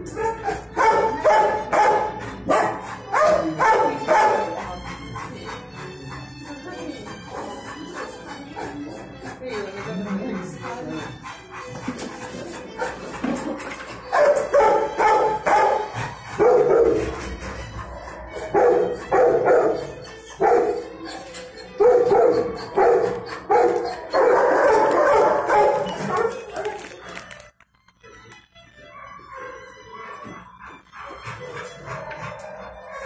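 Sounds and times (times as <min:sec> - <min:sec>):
dogs barking: 0:00.0 - 0:27.4, 0:28.8 - 0:33.0
music: 0:00.0 - 0:33.0.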